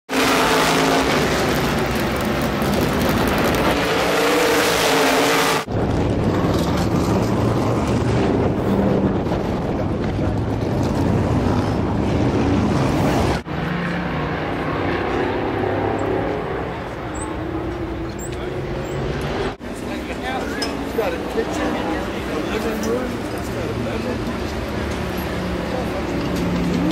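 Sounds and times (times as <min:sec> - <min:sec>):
loud race car engine: 0:00.1 - 0:26.9
voices: 0:16.4 - 0:26.9.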